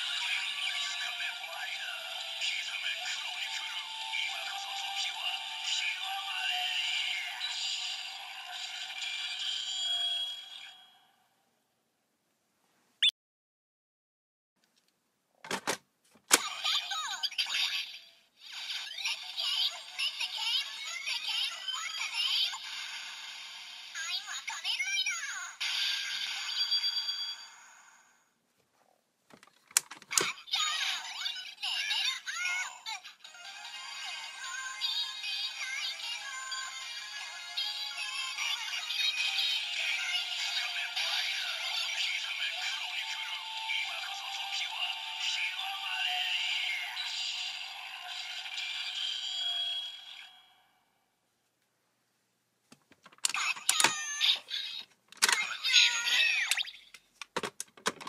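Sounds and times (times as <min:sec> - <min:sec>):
toy belt electronic music: 0:00.0 - 0:11.0, 0:17.6 - 0:23.4, 0:30.2 - 0:50.5, 0:53.2 - 0:56.9
sharp plastic clicks: 0:56.5 - 0:58.0.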